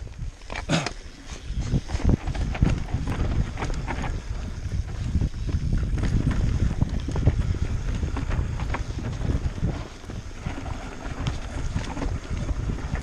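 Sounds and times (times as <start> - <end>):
bike rattling over bumps: 0.0 - 13.0
bike tyres rumbling on dirt: 0.0 - 13.0
wind on microphone: 0.0 - 13.0.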